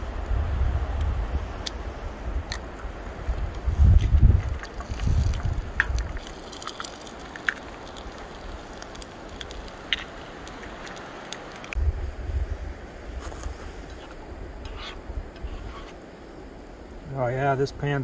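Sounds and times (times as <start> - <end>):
wind rumbling on microphone: 0.0 - 18.0
eggs frying with crackles: 2.4 - 11.8.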